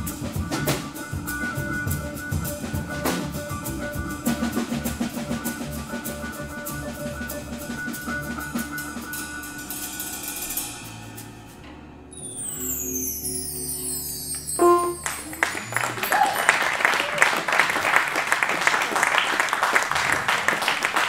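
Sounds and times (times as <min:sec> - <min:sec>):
jazz fusion band playing: 0:00.0 - 0:17.6
cymbal wash: 0:08.5 - 0:15.8.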